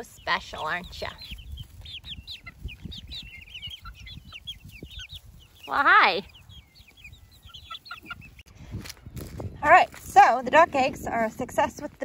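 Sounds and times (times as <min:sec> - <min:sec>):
young chickens peeping: 0:00.0 - 0:12.0.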